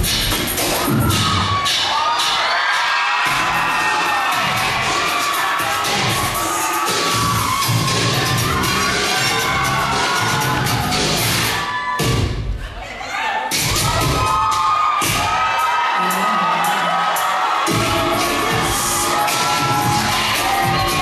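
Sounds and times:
audience cheering and screaming: 0.5s - 12.5s, 13.1s - 21.0s
dance track with bass beat: 3.2s - 12.6s, 16.1s - 21.0s.

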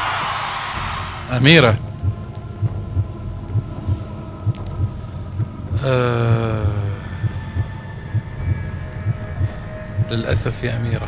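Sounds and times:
low heartbeat-like drum thuds: 0.0s - 11.0s.

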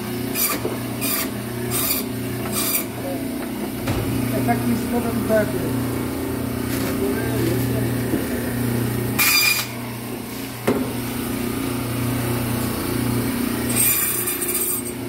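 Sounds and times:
band saw motor humming: 0.0s - 15.0s
band saw cutting harshly: 0.3s - 3.0s, 9.2s - 9.8s, 13.6s - 15.0s
sharp knock: 3.8s - 4.3s.

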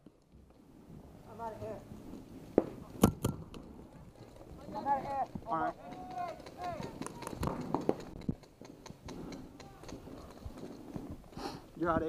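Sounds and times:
paintball markers firing: 5.1s - 10.7s.

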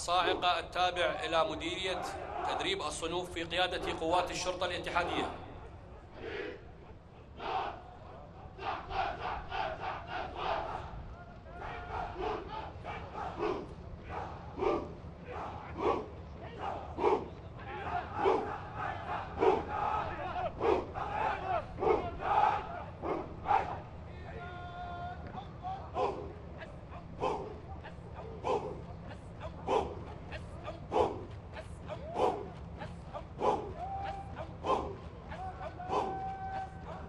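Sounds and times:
group chanting in unison: 1.8s - 2.8s, 6.1s - 6.8s, 7.4s - 11.0s, 11.6s - 23.9s, 25.9s - 26.6s, 27.2s - 28.9s, 29.6s - 30.2s, 33.3s - 37.0s.

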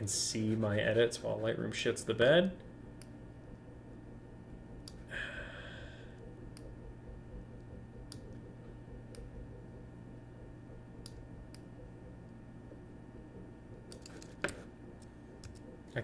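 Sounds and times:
low steady hum: 0.0s - 16.0s
mouse and keyboard clicks: 13.9s - 15.7s.

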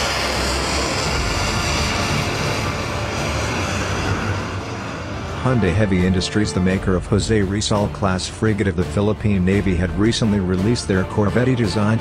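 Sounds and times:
rocket motor roaring: 0.0s - 6.8s
background music: 0.0s - 12.0s.

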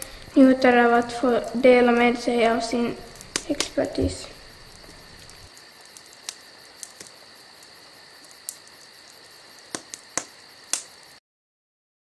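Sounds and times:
fire crackling and popping: 0.0s - 11.2s
steady hiss: 0.0s - 11.2s.

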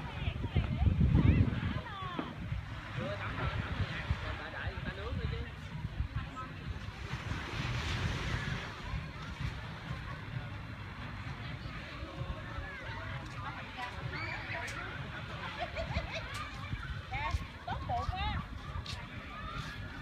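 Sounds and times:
distant voices chattering: 0.0s - 20.0s
wind buffeting microphone: 0.0s - 20.0s.

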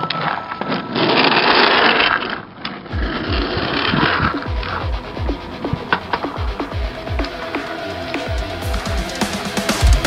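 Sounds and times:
skateboard wheels on rough tarmac: 0.3s - 10.0s.

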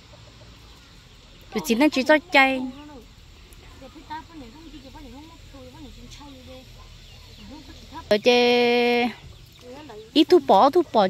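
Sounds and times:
chickens clucking: 0.0s - 11.0s
quiet talk: 0.6s - 11.0s.

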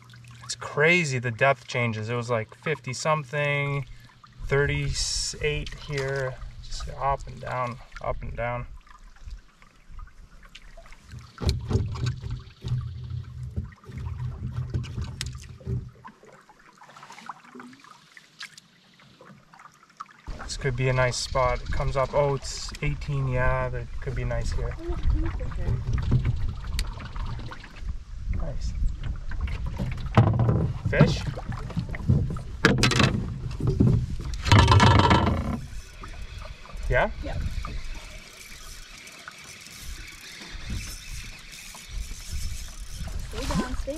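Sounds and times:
water swirling and dripping: 0.0s - 43.9s
paddle knocking on metal hull: 29.6s - 35.7s.

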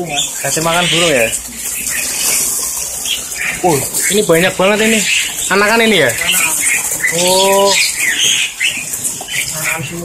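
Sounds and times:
water pouring into plastic bucket: 0.0s - 10.0s.

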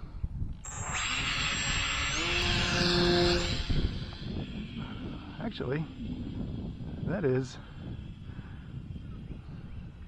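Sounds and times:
model plane motor whining: 0.6s - 9.2s
air rushing: 0.7s - 8.9s.

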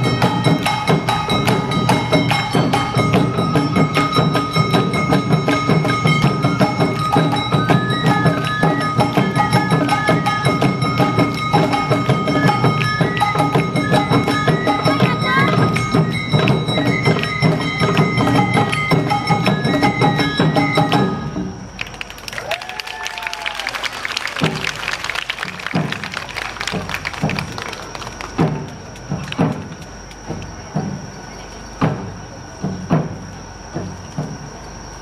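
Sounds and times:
knocks and claps: 0.0s - 21.2s, 21.8s - 30.6s
festival drums playing fast rhythm: 0.0s - 21.8s, 23.2s - 35.0s
voices: 12.2s - 18.3s.

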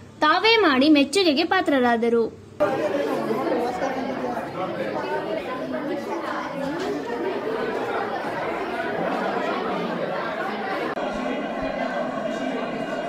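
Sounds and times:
children chattering: 2.6s - 13.0s.

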